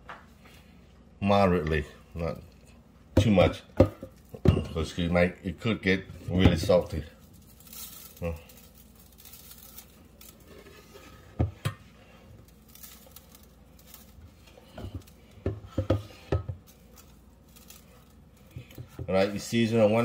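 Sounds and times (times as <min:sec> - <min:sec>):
seasoning grains pattering: 0:06.6 - 0:11.0, 0:12.0 - 0:20.0.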